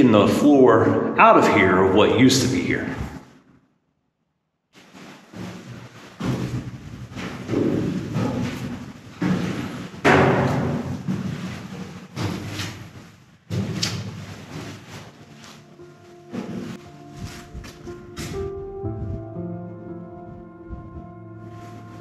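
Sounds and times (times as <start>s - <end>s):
echoing footsteps on metal stairs: 5.0s - 19.2s.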